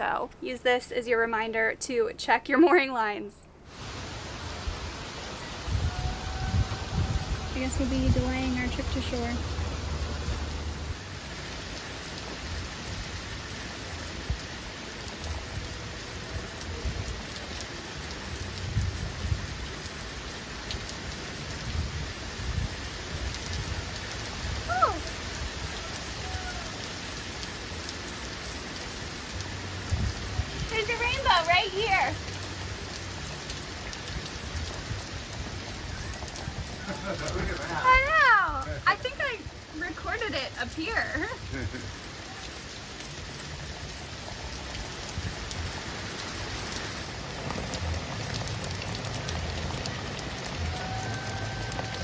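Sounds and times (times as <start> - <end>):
heavy rain on the sea: 2.5 - 52.0
low rumbles: 45.0 - 51.8.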